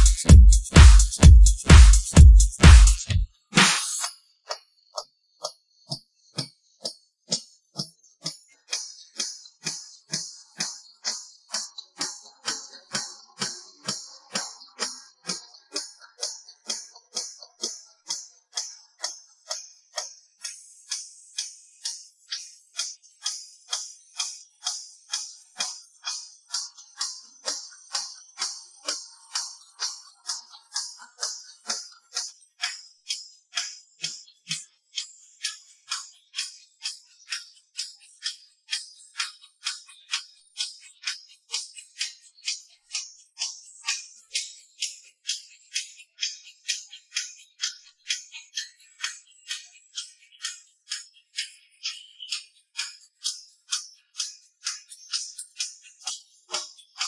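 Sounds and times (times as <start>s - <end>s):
hi-hat and tambourine beat: 0.0s - 4.1s.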